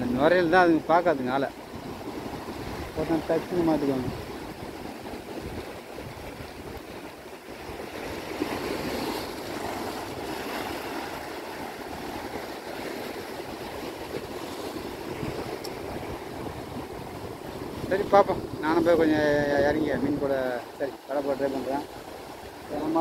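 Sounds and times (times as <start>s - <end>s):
waves breaking in shallows: 0.0s - 23.0s.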